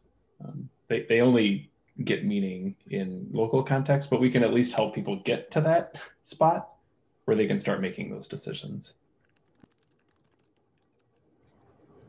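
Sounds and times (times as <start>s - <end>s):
typing on computer keyboard: 9.2s - 11.3s.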